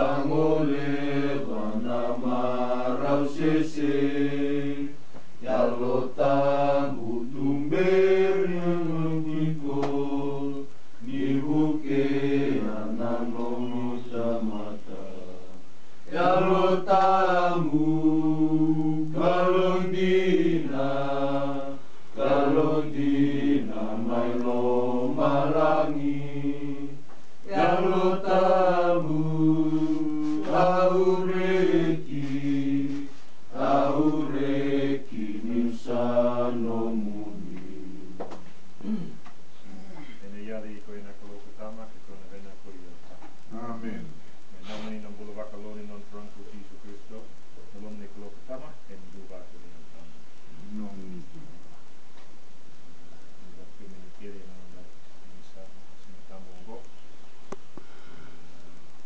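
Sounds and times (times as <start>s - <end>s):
low voices singing a hymn: 0.0s - 42.8s.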